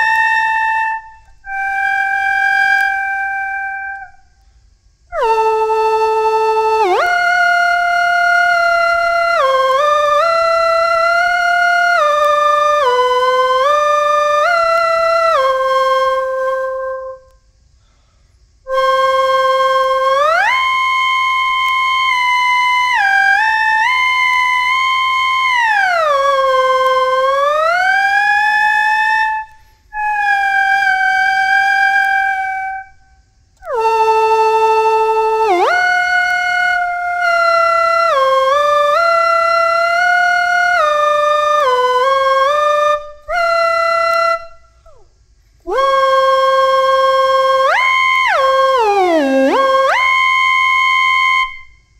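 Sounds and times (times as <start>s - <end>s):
electronic slide whistle melody: 0.0s - 4.2s, 18.7s - 32.9s, 45.8s - 51.6s.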